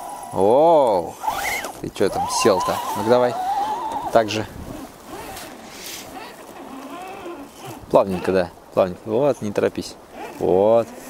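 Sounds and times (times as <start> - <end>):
electric motor whining: 0.0 - 8.4.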